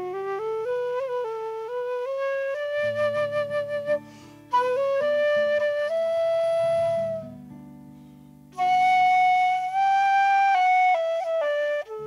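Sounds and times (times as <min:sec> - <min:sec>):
flute playing slow air: 0:00.0 - 0:07.4, 0:08.5 - 0:12.0.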